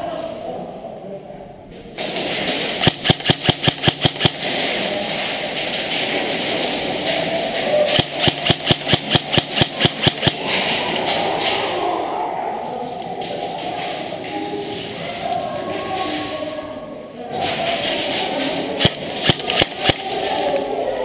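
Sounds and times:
airsoft rifle bursts: 2.7s - 4.8s, 7.8s - 10.8s, 18.8s - 20.5s.

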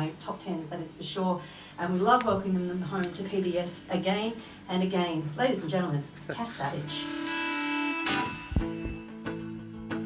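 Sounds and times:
distorted electric guitar chords: 6.6s - 10.0s.

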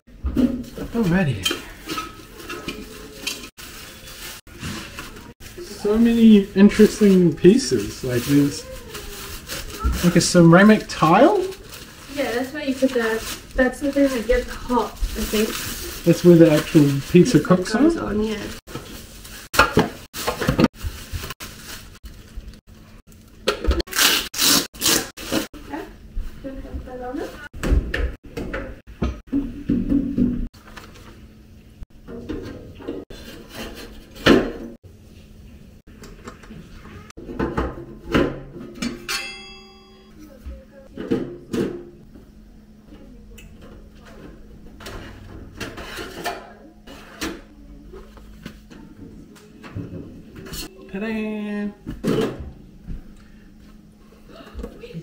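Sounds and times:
plastic packaging rustling: 2.3s - 25.6s.

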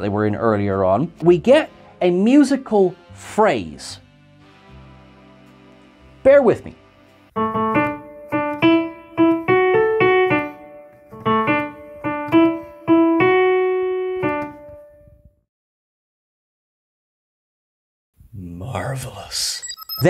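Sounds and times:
electronic keyboard piano melody: 4.4s - 15.2s.

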